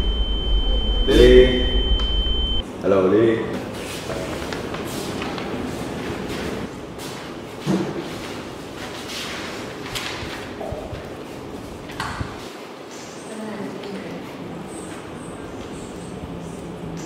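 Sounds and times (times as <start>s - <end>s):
room noise: 0.0s - 17.0s
paper rustling: 8.0s - 11.7s.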